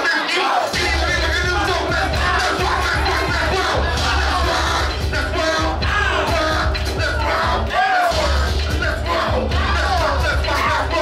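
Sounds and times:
crowd cheering and shouting: 0:00.0 - 0:11.0
loud dance music with heavy bass: 0:00.0 - 0:11.0.

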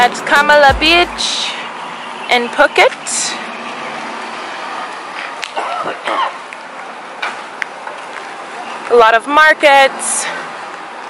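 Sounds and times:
indistinct voices: 0:00.0 - 0:01.7
traffic hum: 0:00.0 - 0:11.0.

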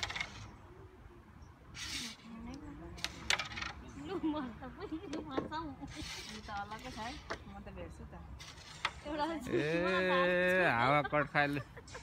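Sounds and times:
carrom pieces clicking: 0:00.0 - 0:00.5, 0:01.8 - 0:03.9, 0:05.1 - 0:07.5.

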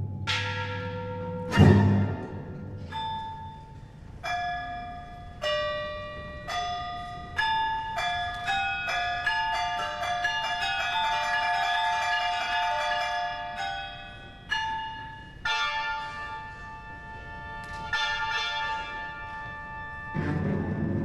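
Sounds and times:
small tuned gongs struck: 0:00.0 - 0:07.1.

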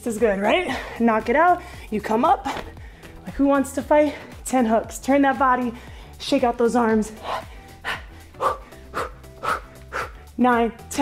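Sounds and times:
workout music with steady beat: 0:00.0 - 0:11.0.

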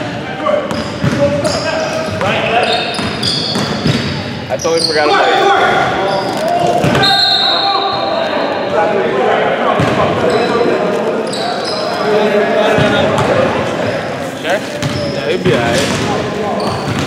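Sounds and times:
voices in gym: 0:00.0 - 0:17.0
sneakers squeaking: 0:00.5 - 0:08.8, 0:09.7 - 0:17.0.

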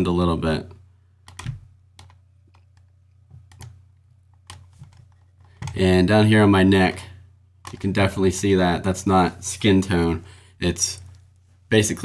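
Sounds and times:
low steady hum: 0:00.0 - 0:12.0
keyboard and mouse clicks: 0:01.2 - 0:05.8, 0:07.6 - 0:07.9.

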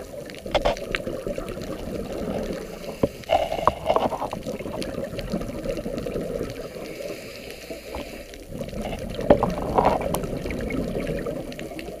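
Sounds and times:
faint underwater clicks: 0:00.0 - 0:12.0.

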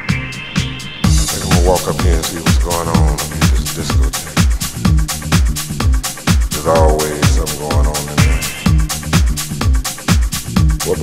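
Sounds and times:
house dance track: 0:00.0 - 0:11.0
kick drum: 0:04.8 - 0:10.8.

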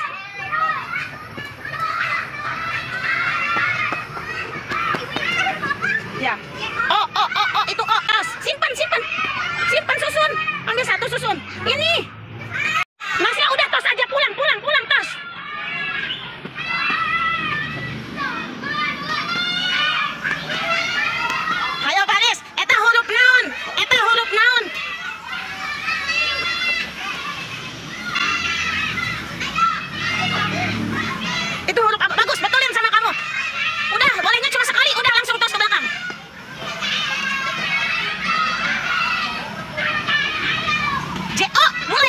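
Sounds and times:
children shouting: 0:00.0 - 0:42.0.

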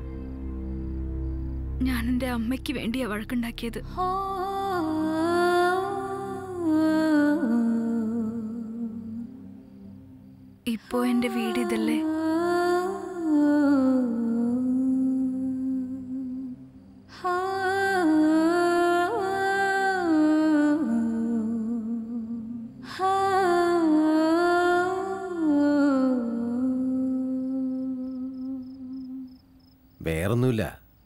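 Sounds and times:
crickets chirping: 0:00.0 - 0:31.0
person speaking: 0:30.0 - 0:30.8.

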